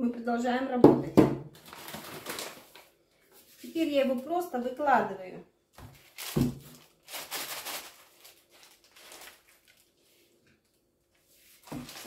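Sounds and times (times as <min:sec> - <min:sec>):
baking parchment rustling: 0:01.6 - 0:04.4, 0:05.8 - 0:12.0.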